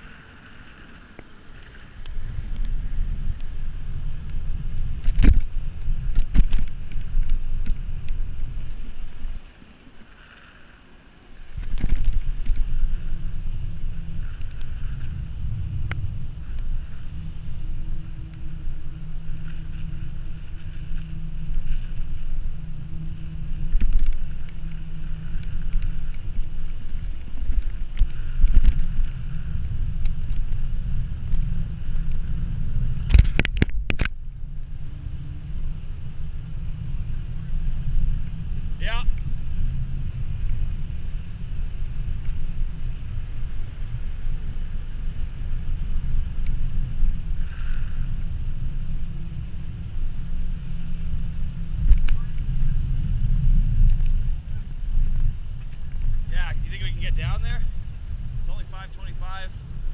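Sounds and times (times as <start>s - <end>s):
tyre noise on asphalt: 0.0s - 59.9s
wind buffeting microphone: 0.0s - 59.9s.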